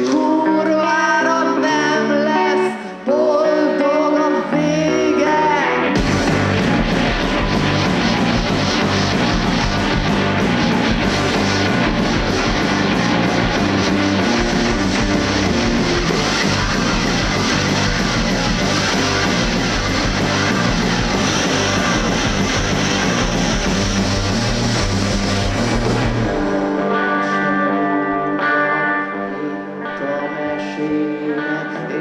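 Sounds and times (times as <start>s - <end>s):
live rock band playing: 0.0s - 32.0s
sustained guitar chords: 0.0s - 32.0s.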